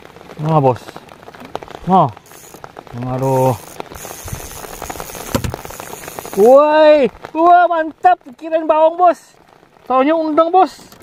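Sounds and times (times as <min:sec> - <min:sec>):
heavy rain pattering: 0:00.0 - 0:11.0.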